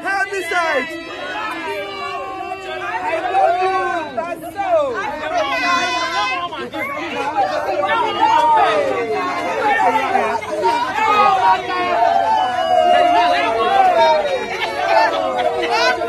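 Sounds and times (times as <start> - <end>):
women chattering and exclaiming: 0.0 - 16.0.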